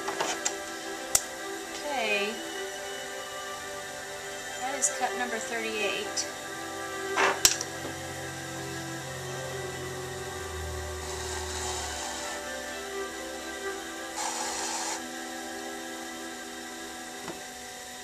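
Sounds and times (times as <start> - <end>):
pottery wheel motor whine: 0.0 - 18.0
metal tool scraping clay: 14.2 - 15.0.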